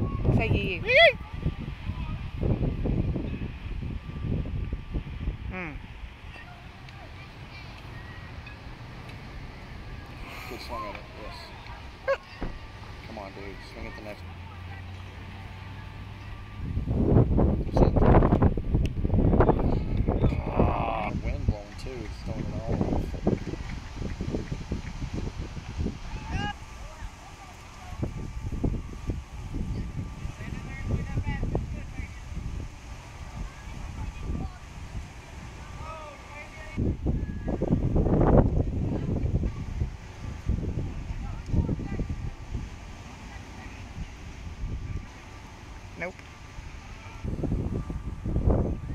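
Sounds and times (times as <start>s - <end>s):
indistinct distant voices: 0.0s - 48.9s
wind buffeting microphone: 0.0s - 48.9s.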